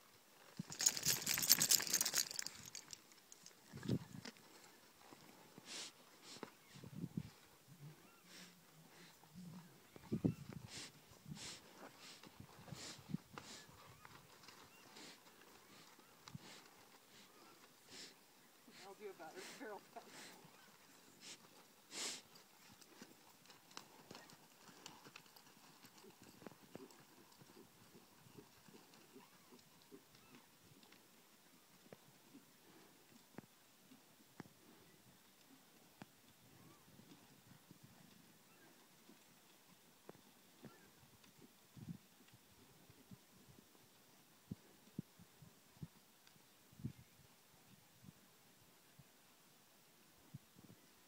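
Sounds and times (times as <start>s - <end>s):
horse hooves on sand: 0.4s - 7.5s, 9.9s - 45.1s.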